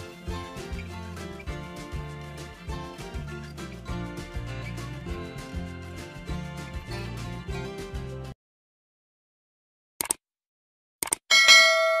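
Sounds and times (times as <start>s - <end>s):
bell chime: 11.3s - 12.0s.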